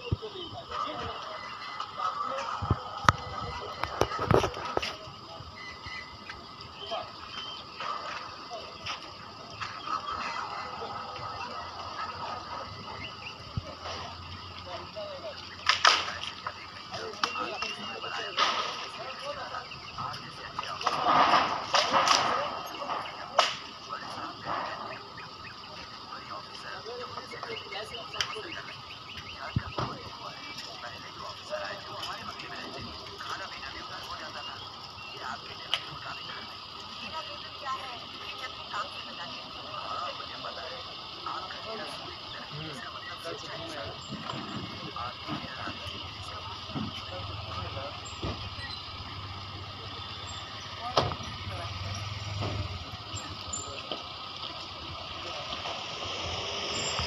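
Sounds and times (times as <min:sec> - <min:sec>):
indistinct voices: 0:00.0 - 0:57.0
vehicle engine running: 0:00.0 - 0:57.0
sharp crack: 0:15.6 - 0:19.2, 0:20.0 - 0:24.9.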